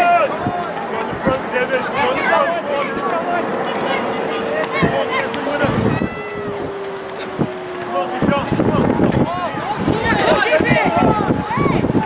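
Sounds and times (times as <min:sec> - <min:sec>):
people shouting: 0:00.0 - 0:12.0.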